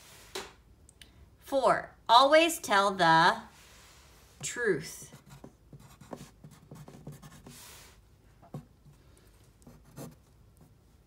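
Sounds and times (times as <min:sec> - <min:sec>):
pencil scratching on paper: 0:05.1 - 0:07.8, 0:09.6 - 0:10.8.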